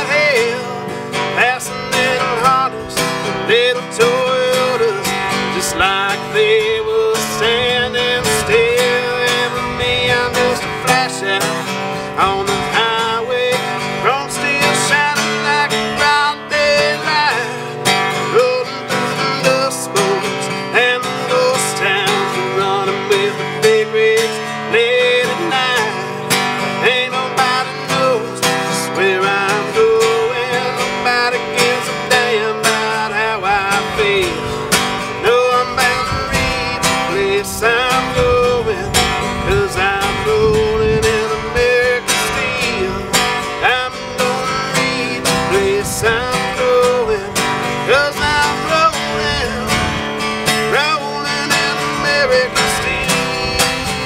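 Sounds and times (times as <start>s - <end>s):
acoustic guitar strumming: 0.0s - 54.0s
bending lead melody line: 0.0s - 54.0s.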